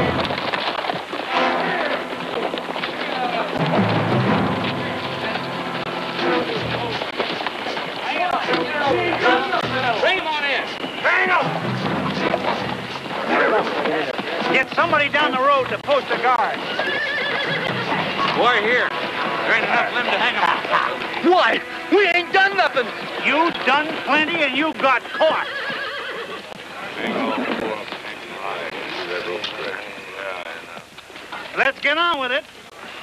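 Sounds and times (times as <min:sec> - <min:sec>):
hooves clattering: 0:00.0 - 0:33.0
agitated voices: 0:01.2 - 0:31.7
horses whinnying: 0:16.0 - 0:21.9, 0:22.8 - 0:27.9.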